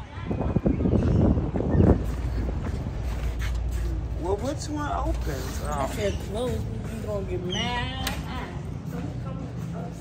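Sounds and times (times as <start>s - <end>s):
wind buffeting microphone: 0.0s - 4.6s.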